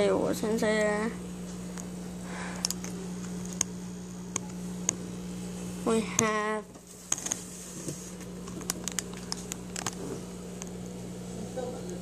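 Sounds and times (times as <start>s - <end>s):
aquarium air pump humming: 0.0s - 12.0s.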